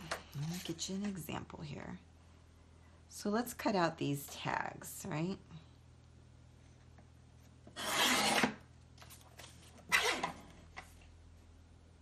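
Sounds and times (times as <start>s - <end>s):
paper cutter slicing paper: 7.7s - 8.6s, 9.8s - 10.5s.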